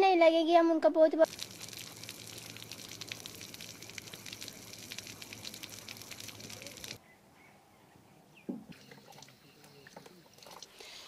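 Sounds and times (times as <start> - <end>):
water running from tap: 1.3 - 7.0.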